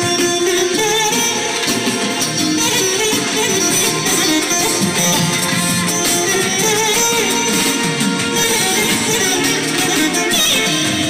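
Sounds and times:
electric guitar melody: 0:00.0 - 0:11.0
electronic keyboard dance music: 0:00.0 - 0:11.0.

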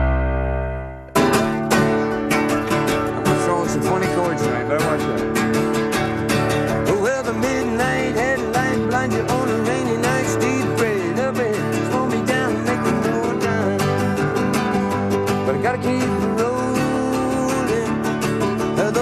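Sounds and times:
theme tune chord: 0:00.0 - 0:03.1
acoustic guitars playing country song: 0:00.0 - 0:19.0
man singing: 0:03.1 - 0:05.7, 0:06.5 - 0:19.0.

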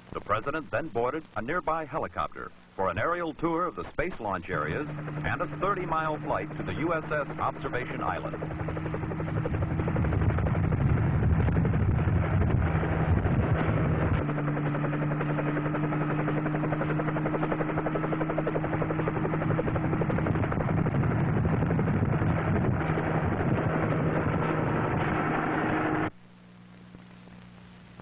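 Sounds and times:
helicopter rotor blades beating: 0:03.0 - 0:26.1
helicopter engine whine: 0:04.1 - 0:26.1.

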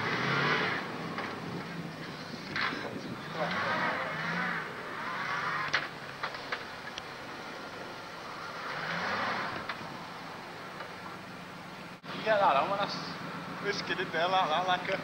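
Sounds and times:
car engine driving slowly: 0:00.0 - 0:15.0.

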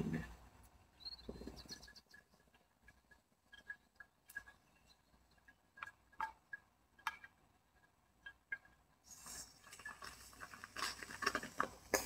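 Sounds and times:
faint chirp: 0:00.9 - 0:02.3.

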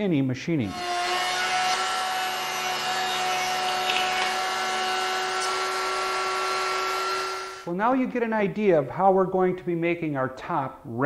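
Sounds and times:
router whining while cutting wood: 0:00.7 - 0:07.7.

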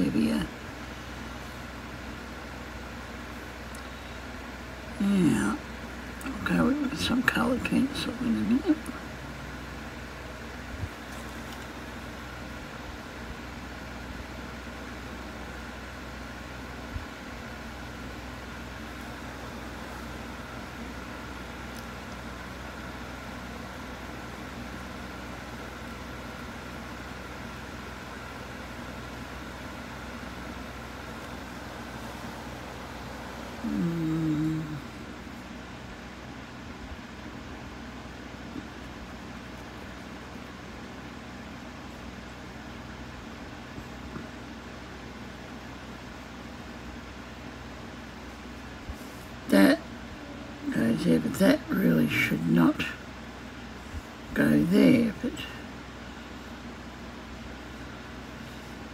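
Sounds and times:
low hum of room tone: 0:00.0 - 0:58.9.

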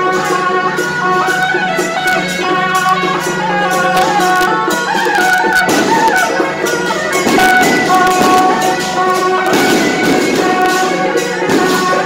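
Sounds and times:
cymbal beats: 0:00.0 - 0:12.0
drum beats: 0:00.0 - 0:12.0
gong beats: 0:00.0 - 0:12.0
wavering wind instrument melody: 0:00.0 - 0:12.0.

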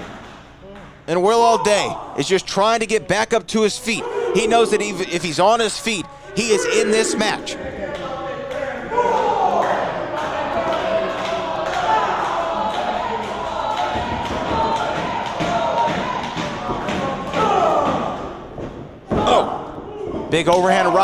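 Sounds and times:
people shouting: 0:04.0 - 0:05.2, 0:06.3 - 0:07.6.

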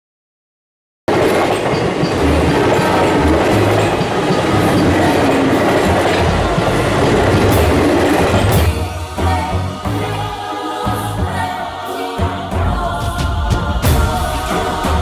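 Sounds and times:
train rumbling on rails: 0:01.1 - 0:15.0.

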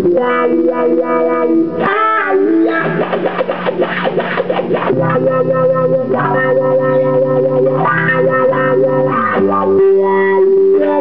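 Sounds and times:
electric guitar sustained chords: 0:00.0 - 0:11.0.

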